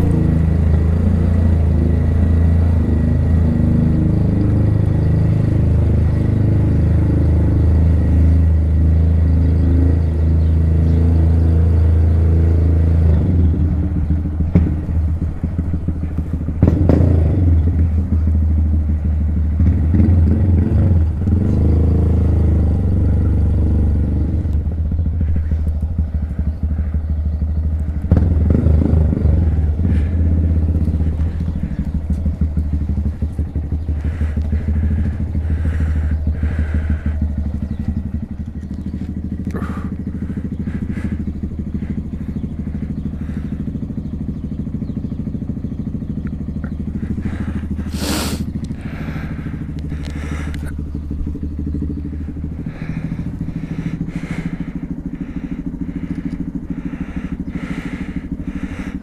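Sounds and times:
motorbike engine running: 0:00.0 - 0:59.0.

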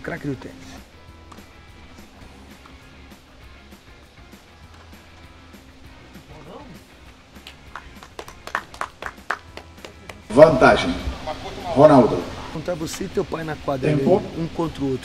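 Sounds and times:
quiet background music with beat: 0:00.0 - 0:15.0
hands clapping: 0:07.3 - 0:10.3.

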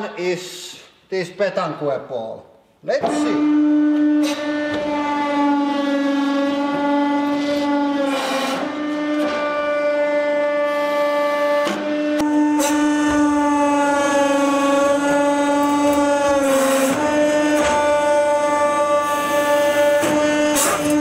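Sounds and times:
hydraulic pump whine: 0:03.0 - 0:21.0.

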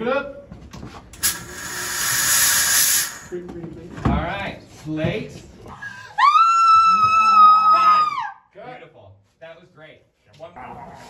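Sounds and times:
woman screaming: 0:06.0 - 0:08.4.

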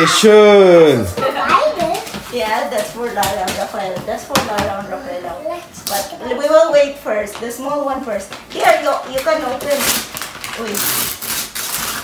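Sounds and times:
wrapping paper tearing: 0:09.2 - 0:12.0.

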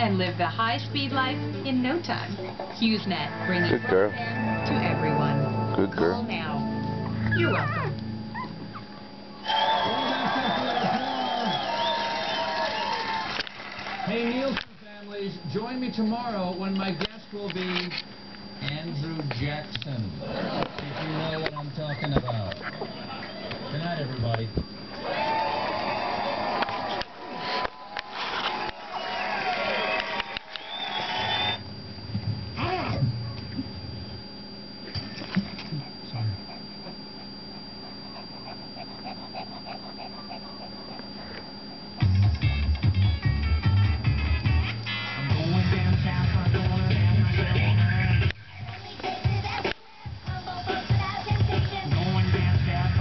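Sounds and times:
television sound with music: 0:00.0 - 0:08.5, 0:09.3 - 0:31.6, 0:41.0 - 0:53.0
puppies whimpering: 0:07.2 - 0:09.0, 0:21.4 - 0:23.9, 0:35.6 - 0:42.1.

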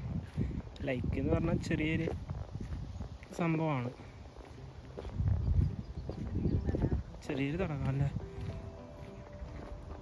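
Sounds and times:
microphone handling rumble: 0:00.0 - 0:03.3, 0:05.0 - 0:07.2
footsteps on paved path: 0:00.0 - 0:10.0.

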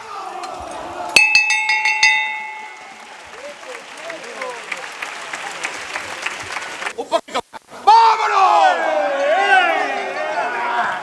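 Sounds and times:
crowd applause: 0:02.0 - 0:07.1.

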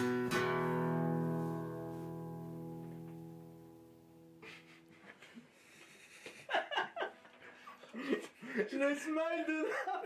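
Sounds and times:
man laughing: 0:04.4 - 0:10.0.

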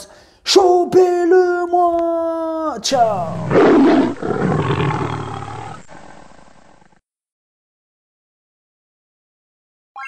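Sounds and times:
deep rough roar: 0:03.2 - 0:07.0.

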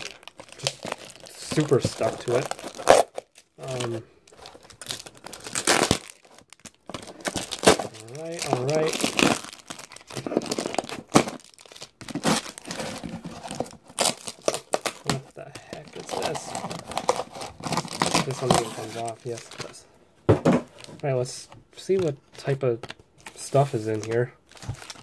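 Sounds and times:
cardboard tearing: 0:00.0 - 0:15.2, 0:16.0 - 0:19.5
plastic wrappers crinkling: 0:00.0 - 0:19.8, 0:20.7 - 0:25.0.

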